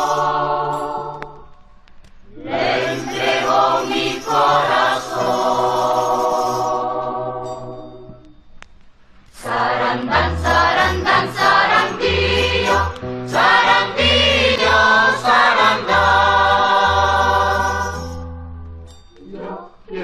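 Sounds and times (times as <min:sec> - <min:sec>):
choir singing: 0:00.0 - 0:01.6, 0:02.3 - 0:07.8, 0:09.4 - 0:18.2, 0:19.2 - 0:20.0
christmas carol music: 0:00.0 - 0:20.0.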